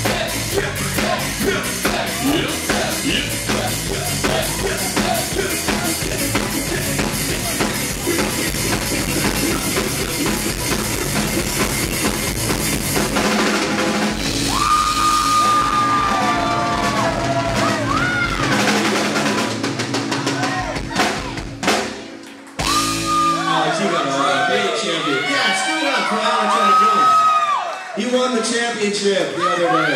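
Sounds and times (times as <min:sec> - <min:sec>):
rock band playing: 0:00.0 - 0:26.2.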